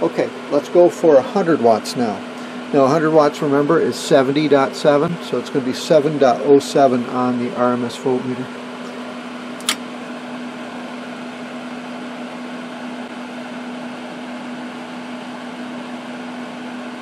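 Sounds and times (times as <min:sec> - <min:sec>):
electric fan whirring: 0:00.0 - 0:17.0
sharp click: 0:09.6 - 0:09.8.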